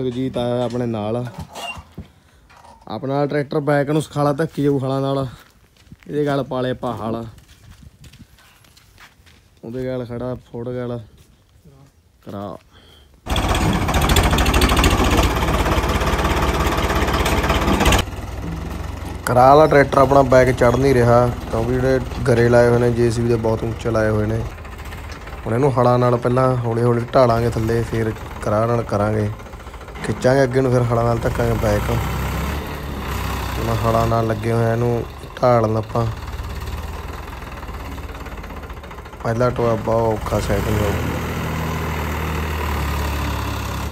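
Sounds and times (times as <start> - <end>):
diesel tractor engine working hard: 13.3 - 43.9.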